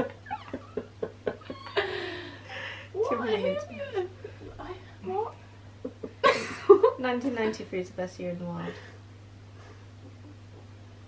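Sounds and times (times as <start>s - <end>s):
women laughing: 0.0s - 4.6s, 5.8s - 7.0s.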